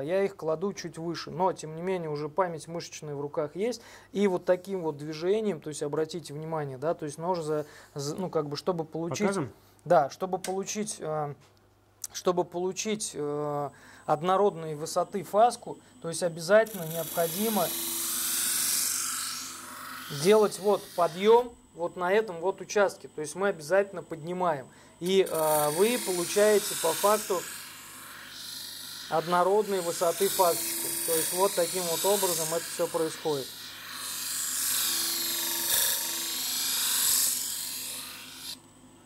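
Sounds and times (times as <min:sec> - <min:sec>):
knife grinding on abrasive disc: 0:16.6 - 0:21.4, 0:25.2 - 0:38.6.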